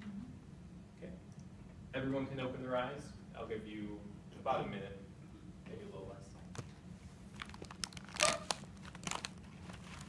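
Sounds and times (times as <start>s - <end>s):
low room hum: 0.0s - 10.0s
paper rustling: 7.3s - 10.0s.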